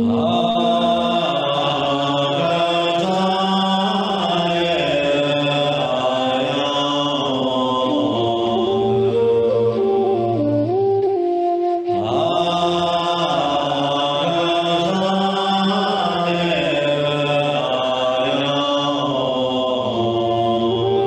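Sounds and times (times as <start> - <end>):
man chanting in long notes: 0.0 - 10.1, 11.9 - 21.0.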